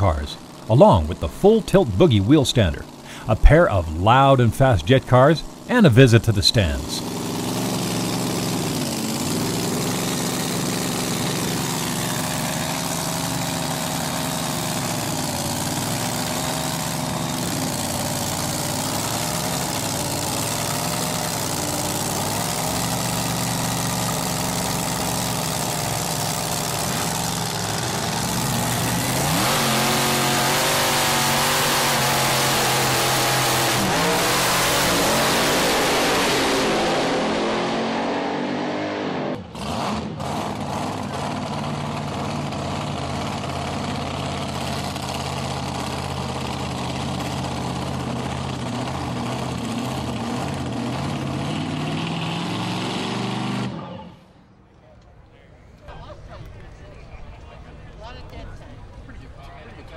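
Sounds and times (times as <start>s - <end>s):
drag racing engine idling: 0.0s - 37.8s, 39.4s - 51.7s.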